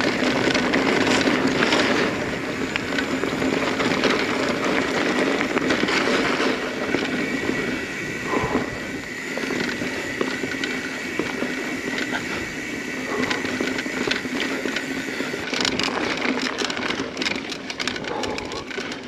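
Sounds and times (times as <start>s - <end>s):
bike rattling and knocking: 0.0s - 19.0s
bike tyres rushing on dirt: 0.0s - 19.0s.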